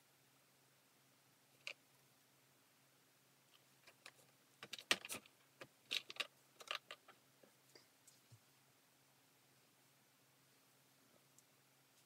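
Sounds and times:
small hard objects clicking: 3.8s - 7.2s.

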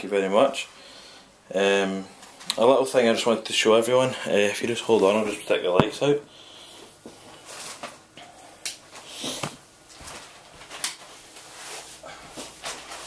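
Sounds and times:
knocks and rustles of movement: 8.8s - 13.0s.

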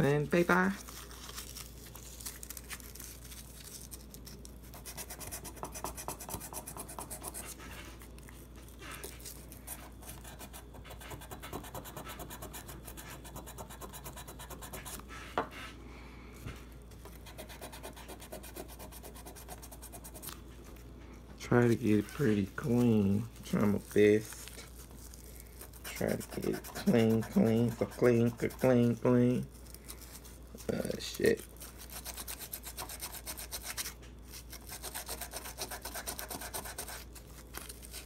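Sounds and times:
sandpaper scrubbing on steel: 25.7s - 29.2s.

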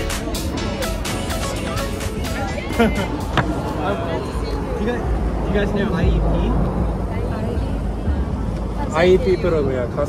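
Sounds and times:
faint conversation: 0.0s - 10.0s
street traffic: 0.0s - 10.0s.

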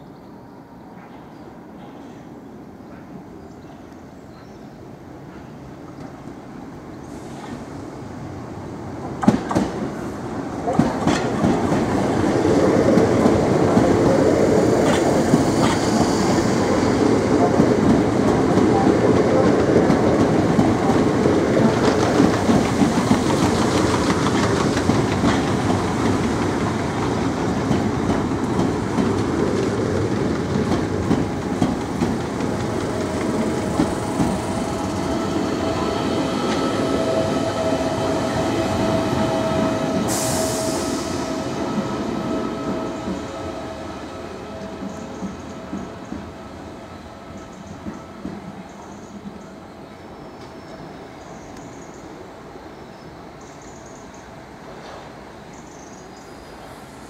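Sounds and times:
train wheels rumbling on rails: 5.2s - 52.3s
short high hiss: 40.0s - 41.4s.

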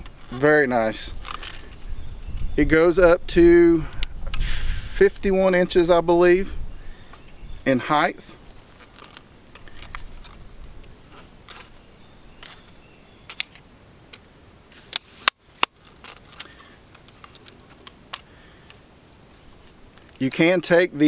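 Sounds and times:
tripod legs clicking: 8.6s - 20.2s.

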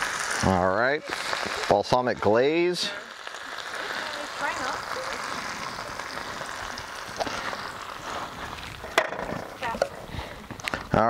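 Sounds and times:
food sizzling on griddle: 0.0s - 9.8s.

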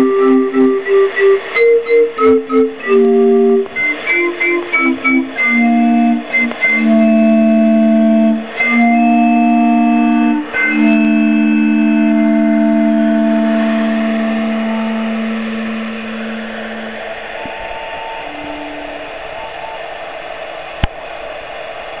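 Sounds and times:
instrument chord and notes: 0.0s - 19.1s.

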